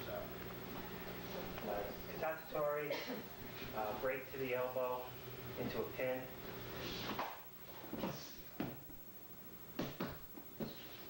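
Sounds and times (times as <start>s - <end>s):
bodies thumping on floor: 7.1s - 8.9s, 9.7s - 11.0s.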